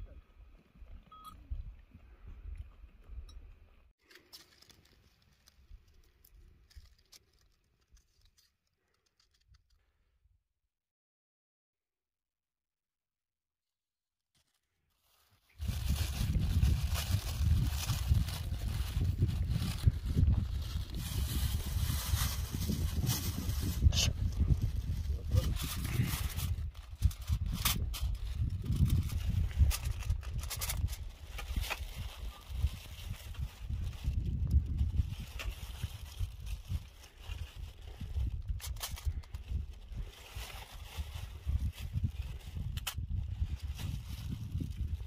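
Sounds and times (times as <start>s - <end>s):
plastic bag and foil crackling: 4.0s - 9.8s, 14.3s - 45.0s
wind buffeting microphone: 15.6s - 45.0s.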